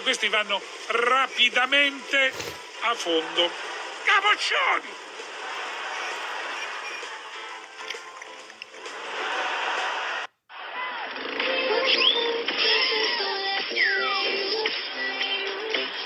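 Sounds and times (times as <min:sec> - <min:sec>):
river rapids rushing: 0:00.0 - 0:10.3.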